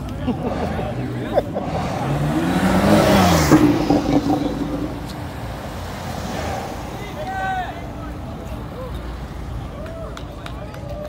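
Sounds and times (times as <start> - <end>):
car driving past: 1.6 - 7.2.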